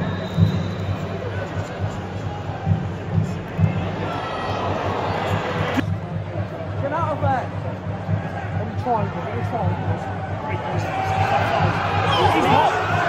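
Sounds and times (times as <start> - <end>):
stadium crowd din: 0.0 - 13.0
people shouting: 10.8 - 13.0.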